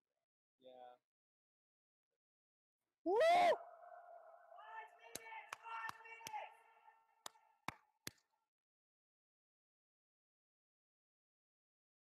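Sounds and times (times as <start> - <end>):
spectator cheering woo: 3.1 - 4.1.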